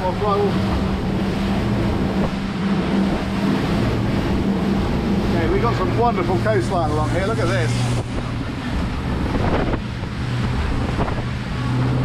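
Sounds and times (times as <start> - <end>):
outboard engines droning: 0.0 - 12.0
wind and water rushing: 0.0 - 12.0.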